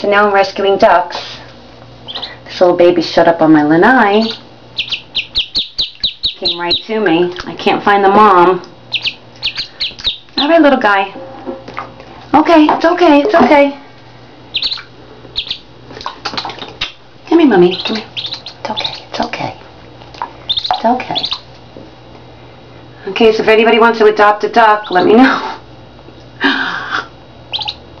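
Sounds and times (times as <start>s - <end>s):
duckling peeping: 2.0s - 2.4s, 4.2s - 10.6s, 14.5s - 19.3s, 20.1s - 21.5s, 24.6s - 25.2s, 27.5s - 27.9s.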